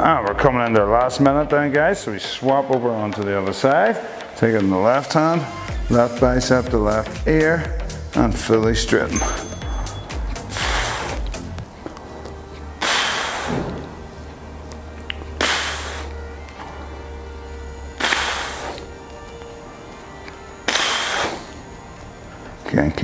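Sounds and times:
quiet background music: 0.0 - 23.0
man exhaling forcefully: 10.5 - 11.3, 12.8 - 13.8, 15.4 - 16.1, 18.0 - 18.8, 20.7 - 21.5.

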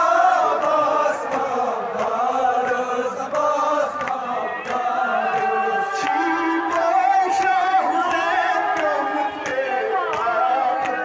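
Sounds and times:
men chanting a mourning lament: 0.0 - 11.0.

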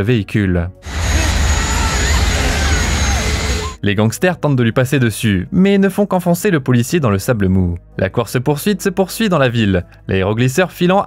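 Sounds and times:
deep engine rumble: 0.8 - 3.8
rush of air: 0.8 - 3.8.

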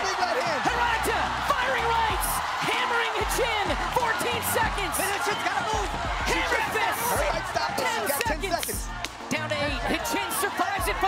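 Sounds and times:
music: 0.0 - 11.0
people shouting excitedly: 0.0 - 11.0.

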